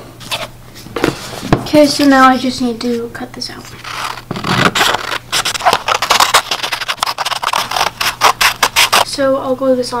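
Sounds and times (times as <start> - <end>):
scissors snipping paper: 3.8 - 9.1.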